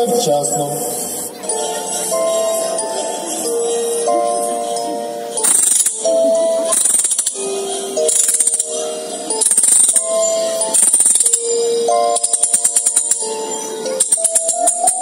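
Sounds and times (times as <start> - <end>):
music with held chords: 1.0 - 15.0.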